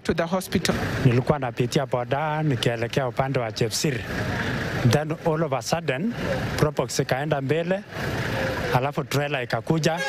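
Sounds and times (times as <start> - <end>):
man talking: 0.0 - 4.1, 4.8 - 7.9, 8.7 - 10.0
road noise of passing vehicle: 0.0 - 10.0.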